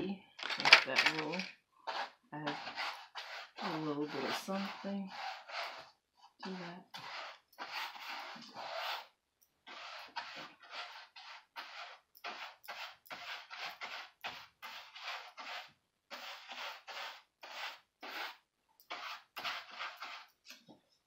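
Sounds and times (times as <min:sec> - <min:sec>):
paintbrush scraping on canvas: 0:00.6 - 0:20.5.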